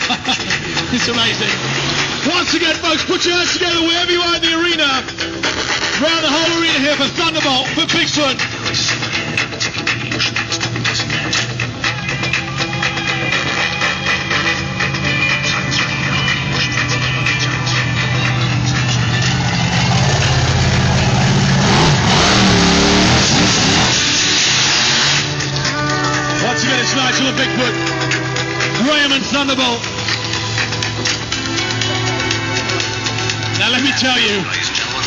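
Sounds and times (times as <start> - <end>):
monster truck engine revving: 0.0 - 3.1, 13.2 - 25.6
background arena music: 0.0 - 35.0.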